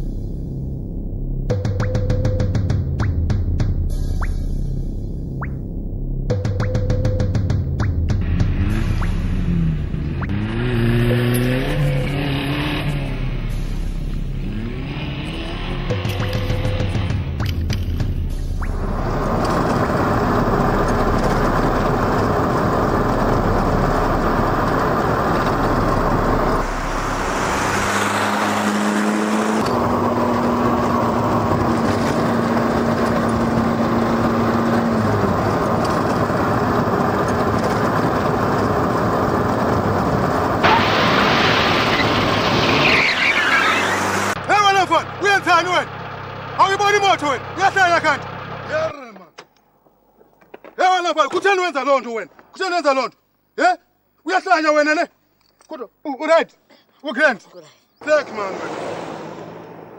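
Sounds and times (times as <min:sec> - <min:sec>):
car engine and road noise: 0:00.0 - 0:53.5, 0:57.9 - 0:59.9.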